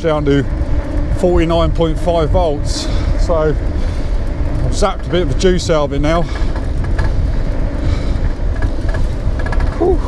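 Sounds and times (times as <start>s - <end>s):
bike road noise: 0.0s - 10.0s
wind rumbling on microphone: 0.0s - 10.0s.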